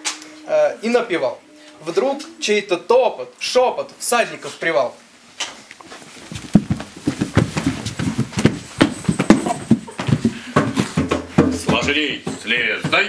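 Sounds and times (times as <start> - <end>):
horses hoofbeats clattering: 5.8 - 13.0.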